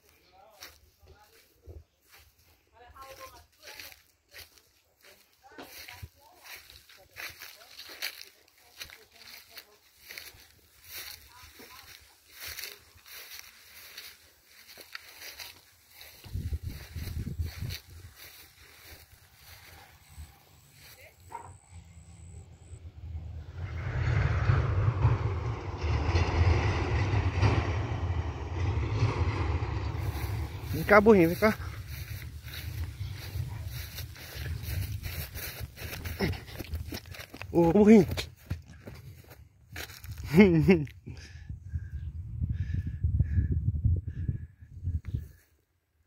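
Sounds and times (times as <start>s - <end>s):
footsteps crunching through dry grass: 0.0s - 22.4s, 28.6s - 41.0s
wind rumbling on microphone: 10.0s - 20.6s, 22.6s - 45.5s.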